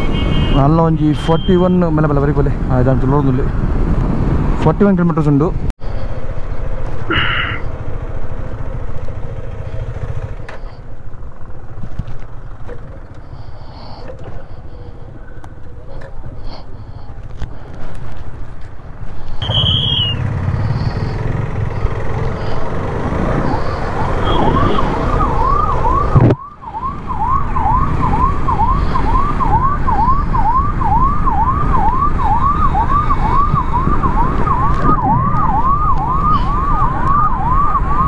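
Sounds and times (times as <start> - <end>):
police siren yelping: 19.4 - 38.0.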